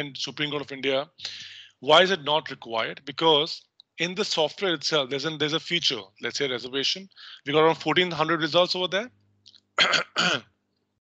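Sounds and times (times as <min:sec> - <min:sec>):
man clearing his throat: 0:09.8 - 0:10.4.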